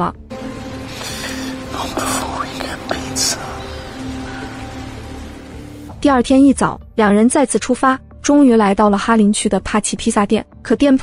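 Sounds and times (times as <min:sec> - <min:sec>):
man whispering: 0:00.9 - 0:04.5.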